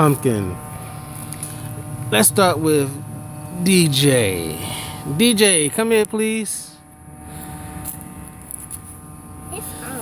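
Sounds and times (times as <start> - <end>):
faint hum: 0.0 - 10.0.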